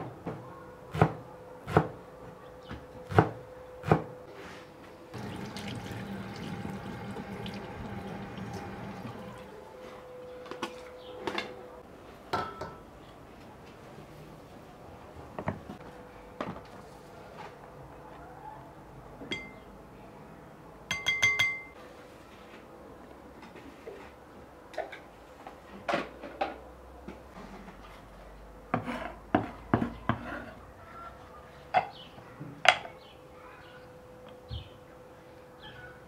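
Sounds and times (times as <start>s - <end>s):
dishes and utensils clinking: 20.9s - 21.8s.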